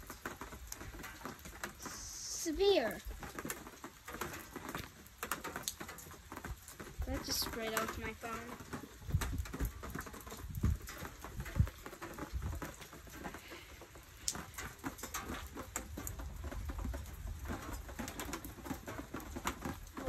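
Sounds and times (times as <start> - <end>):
rain dripping and pattering: 0.0 - 20.0
low rumbling buffets on microphone: 8.2 - 20.0.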